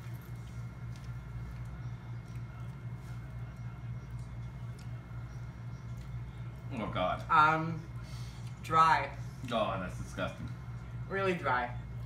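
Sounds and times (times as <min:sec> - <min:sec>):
crunchy food being chewed: 0:00.0 - 0:07.3
low room hum: 0:00.0 - 0:12.0.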